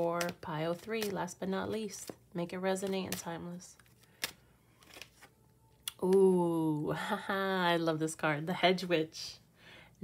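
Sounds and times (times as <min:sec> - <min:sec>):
cards clicking and tapping: 0:00.0 - 0:01.3, 0:02.8 - 0:05.3.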